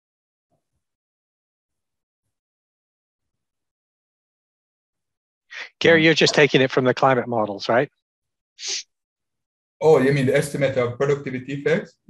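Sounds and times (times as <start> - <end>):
man's voice: 9.8 - 12.0.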